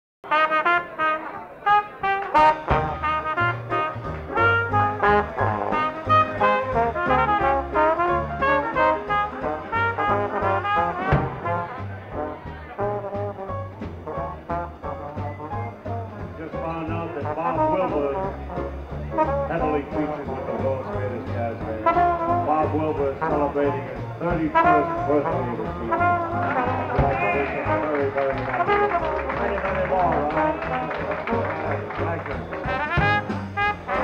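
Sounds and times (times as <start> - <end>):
jazz band playing: 0.2 - 34.0.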